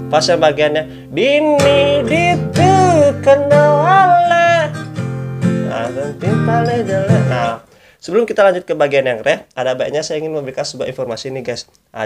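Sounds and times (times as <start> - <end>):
man singing: 0.0 - 7.7
strummed acoustic guitar: 0.0 - 7.8.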